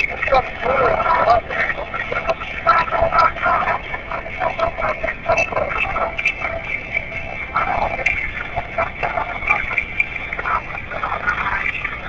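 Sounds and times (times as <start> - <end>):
voices through phone speaker: 0.0 - 12.0.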